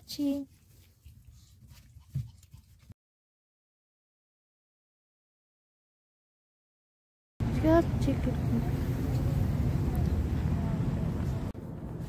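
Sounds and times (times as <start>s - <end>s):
faint low rumble: 7.4s - 12.0s.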